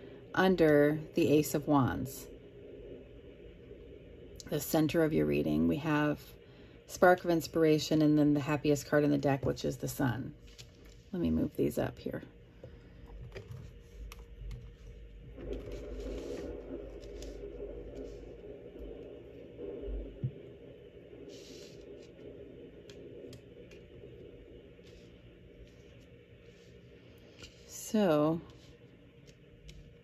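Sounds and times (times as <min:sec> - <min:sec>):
cards rustling and scraping: 0:10.4 - 0:11.1, 0:13.1 - 0:17.4.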